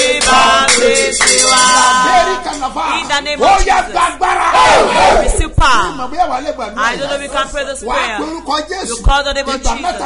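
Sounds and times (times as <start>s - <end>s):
man shouting: 1.8s - 9.0s.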